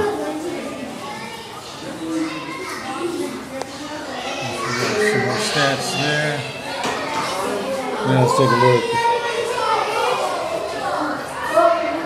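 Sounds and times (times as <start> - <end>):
chatter of voices: 0.0 - 12.0.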